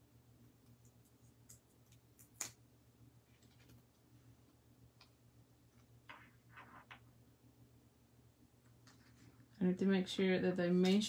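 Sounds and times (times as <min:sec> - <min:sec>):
soft paper rustles: 0:08.8 - 0:09.5.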